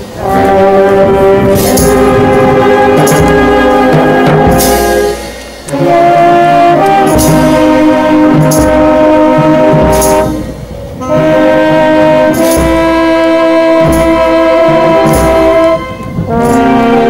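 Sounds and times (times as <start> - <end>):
bass drum and cymbals: 0.0 - 17.0
brass band playing a march: 0.0 - 17.0.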